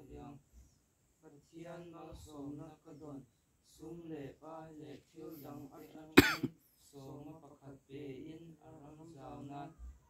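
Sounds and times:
person coughing: 6.2 - 6.5.

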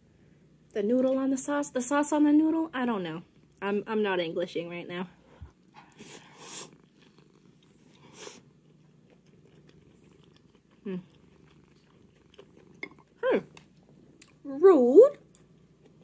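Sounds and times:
cat purring: 5.2 - 14.4.

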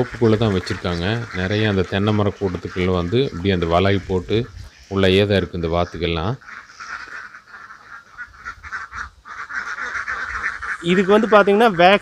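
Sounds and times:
ducks quacking: 0.0 - 12.0.

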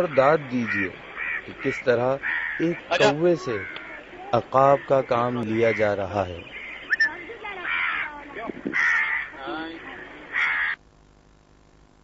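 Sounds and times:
man's voice: 0.0 - 3.7, 4.3 - 6.5
crow cawing: 0.0 - 10.8.

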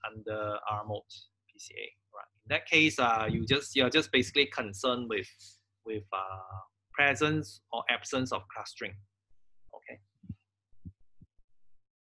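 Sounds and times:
faint low thumps: 2.5 - 4.5.

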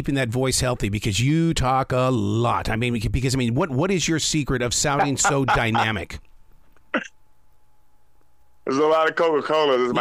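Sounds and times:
person throat catch: 6.9 - 7.2.

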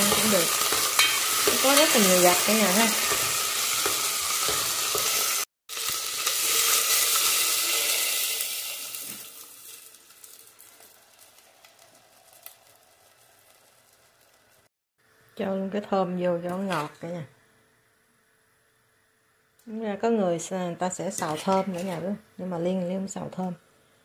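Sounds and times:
shrimp sizzling in a pot: 0.0 - 15.2.

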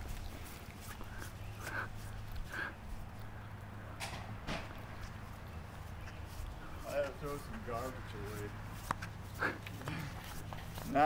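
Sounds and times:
footsteps: 4.0 - 11.0.

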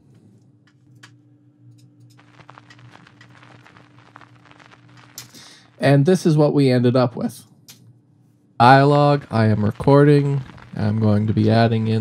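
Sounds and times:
low steady hum: 0.0 - 12.0
vinyl crackle and pops: 0.6 - 7.8, 8.6 - 12.0.

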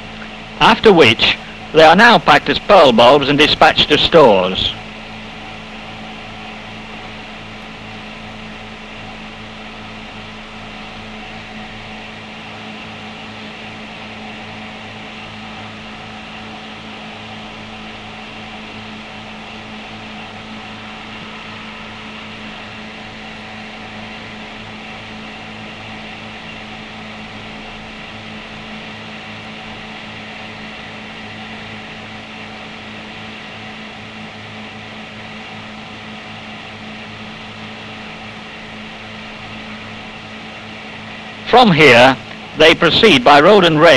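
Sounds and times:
film soundtrack hum and hiss: 0.0 - 43.9.

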